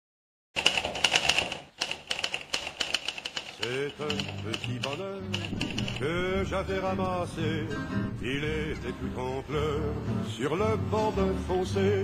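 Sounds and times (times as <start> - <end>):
typewriter key clicks: 0.6 - 6.0.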